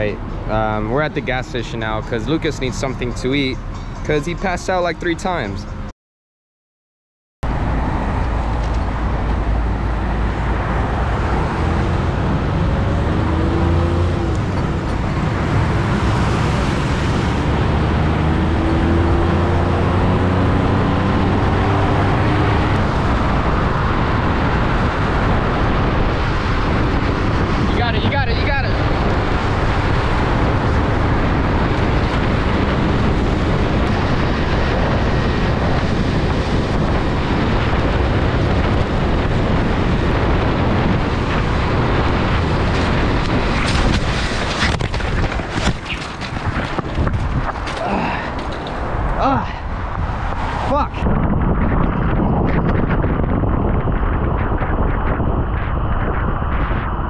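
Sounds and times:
road and wind noise: 0:00.0 - 0:05.9, 0:07.4 - 0:57.0
truck engine accelerating: 0:07.4 - 0:54.2.

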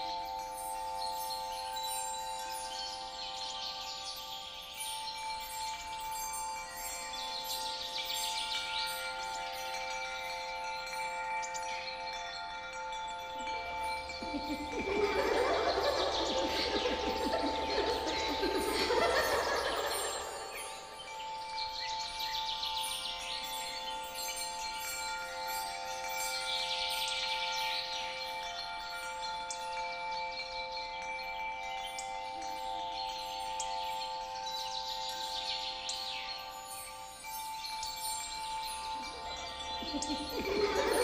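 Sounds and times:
shimmering chime-like magical tone: 0:00.0 - 0:41.0
birds chirping: 0:13.0 - 0:24.2, 0:33.6 - 0:41.0.

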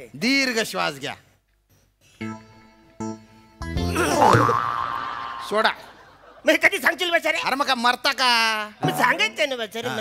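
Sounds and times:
background music: 0:02.0 - 0:06.4
comic wobbling boing sound: 0:04.0 - 0:05.1.

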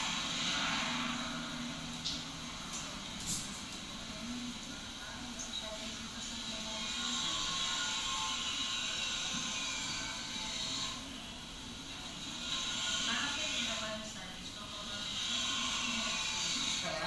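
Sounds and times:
indistinct voices: 0:00.0 - 0:17.0.

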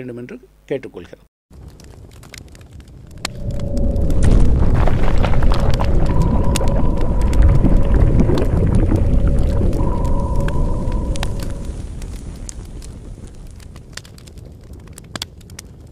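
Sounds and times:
crackles: 0:01.5 - 0:15.9
deep rumble: 0:02.9 - 0:14.5
held tones: 0:03.2 - 0:12.0.

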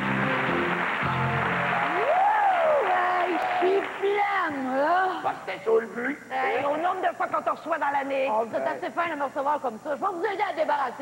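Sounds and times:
audience applauding: 0:00.0 - 0:04.5.

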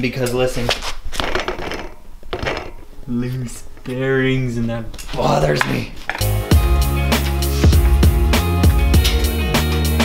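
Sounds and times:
bike wheel hub rattling: 0:01.0 - 0:02.9.

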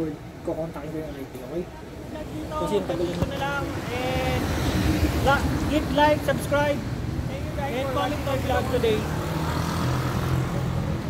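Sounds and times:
traffic engine rumble: 0:00.0 - 0:11.0.

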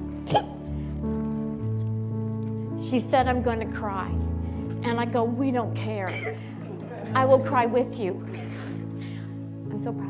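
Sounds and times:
soft background music chords: 0:00.0 - 0:10.0.

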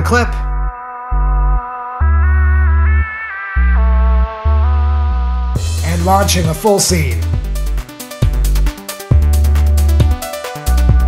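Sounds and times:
low bass line: 0:00.0 - 0:11.0.

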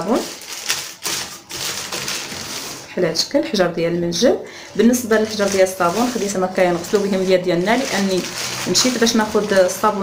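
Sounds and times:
paper bag crinkling: 0:00.0 - 0:02.9, 0:04.9 - 0:10.0.

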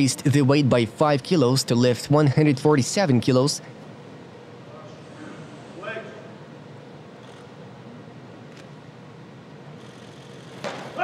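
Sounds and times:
arena hall noise: 0:00.0 - 0:11.0.

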